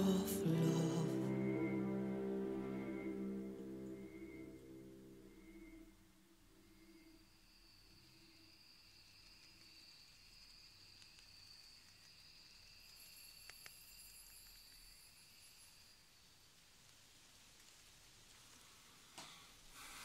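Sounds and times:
faint high whine: 0:00.0 - 0:16.5
small clicks: 0:08.9 - 0:15.2.

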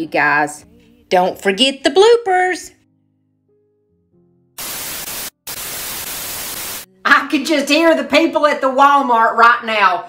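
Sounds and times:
tv static hiss: 0:04.6 - 0:06.9.

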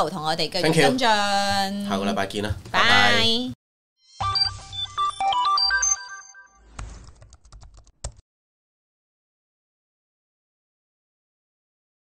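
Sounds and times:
bright synth tones: 0:04.1 - 0:06.7.

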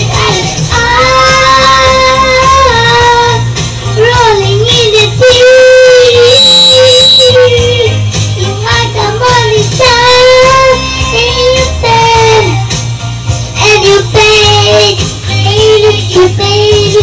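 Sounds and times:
girl singing into microphone: 0:00.0 - 0:12.7, 0:13.6 - 0:17.0
loud backing music with bass: 0:00.0 - 0:17.0.

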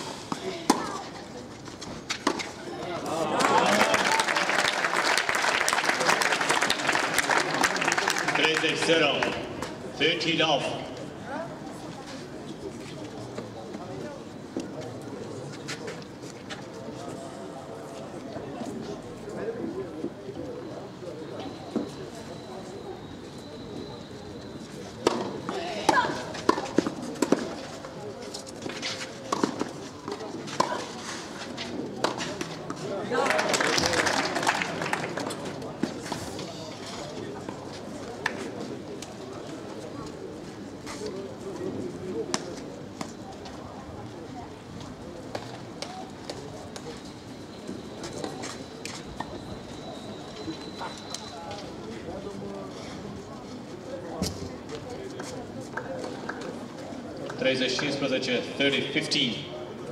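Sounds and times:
crowd chatter: 0:00.0 - 0:59.9
spectators applauding: 0:03.4 - 0:09.4, 0:33.2 - 0:35.3.

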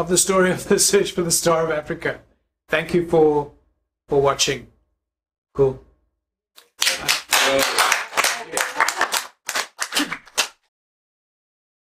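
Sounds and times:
audience clapping: 0:06.6 - 0:10.7.

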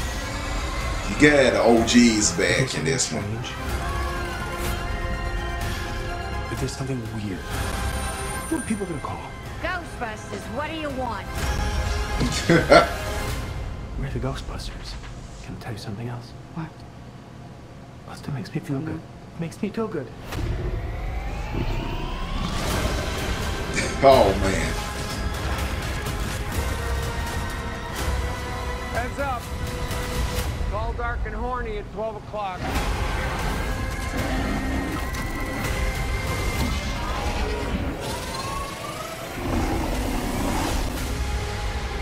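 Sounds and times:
low rumble: 0:20.3 - 0:23.8
rising pitched tone: 0:20.4 - 0:23.2.

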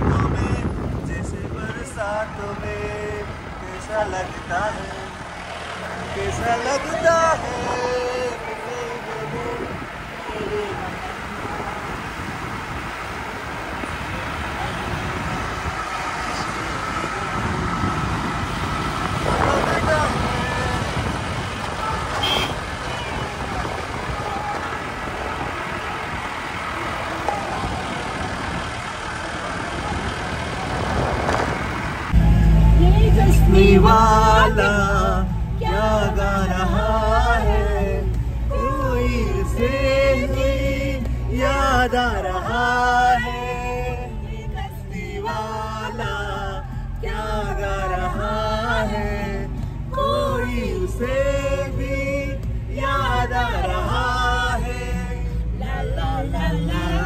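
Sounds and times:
car engine and road noise: 0:00.0 - 0:57.0
voices: 0:00.0 - 0:57.0.

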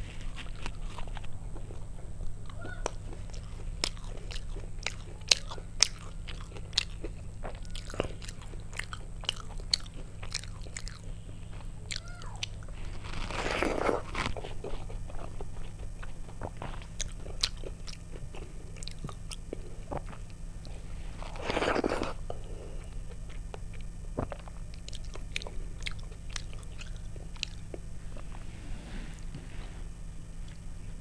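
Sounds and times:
chewing soft food: 0:00.0 - 0:31.0
low steady hum: 0:00.0 - 0:31.0.

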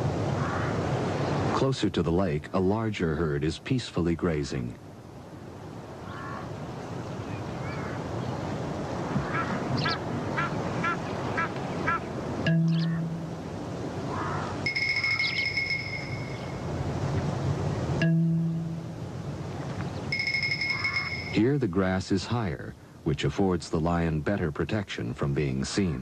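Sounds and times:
natural ambience: 0:00.0 - 0:26.0
birds calling: 0:00.3 - 0:01.6, 0:05.7 - 0:16.8, 0:17.6 - 0:22.0
low held notes: 0:12.4 - 0:22.7.

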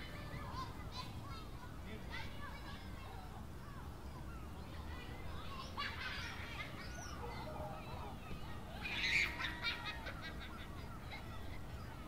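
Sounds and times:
outdoor ambience: 0:00.0 - 0:12.0
birds calling: 0:03.6 - 0:12.0.

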